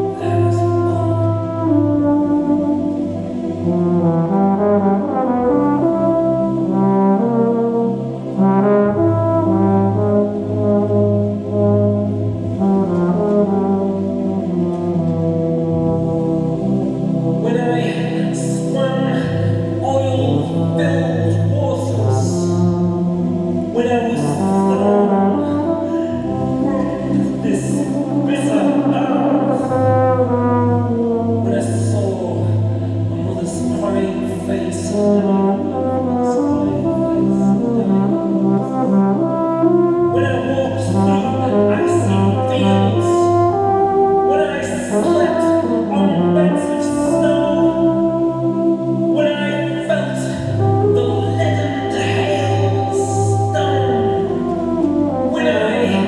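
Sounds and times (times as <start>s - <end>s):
euphonium melody: 0.0s - 56.0s.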